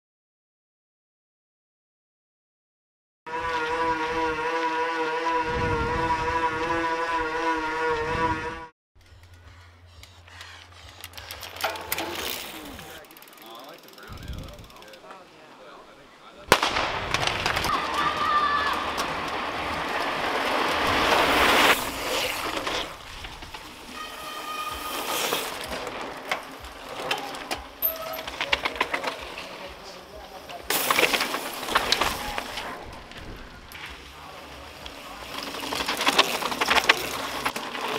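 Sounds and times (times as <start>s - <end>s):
bikes passing on forest trail: 3.3s - 37.9s
bikes rolling on gravel: 3.3s - 37.9s
crowd voices: 9.8s - 37.9s
sharp crack: 16.5s - 23.1s.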